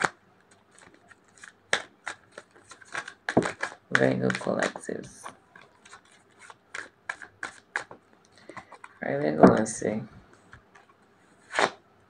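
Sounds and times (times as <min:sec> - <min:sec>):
cards being shuffled by hand: 0:00.0 - 0:11.8.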